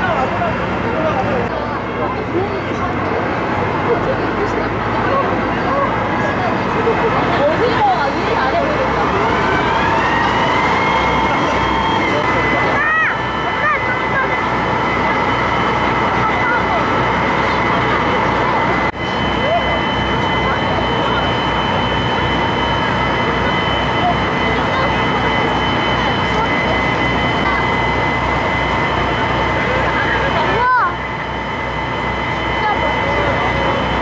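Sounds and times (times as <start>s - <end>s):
ferry engine throbbing: 0.0s - 34.0s
passengers chatting: 0.0s - 34.0s.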